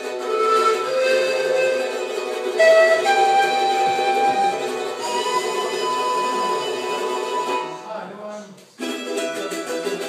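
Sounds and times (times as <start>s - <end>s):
mandolin-like stringed instrument: 0.0s - 10.0s.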